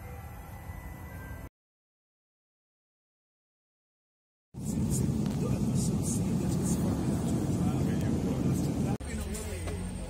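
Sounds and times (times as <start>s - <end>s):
faint passenger voices: 4.6s - 10.0s
jet cabin rumble: 4.6s - 10.0s.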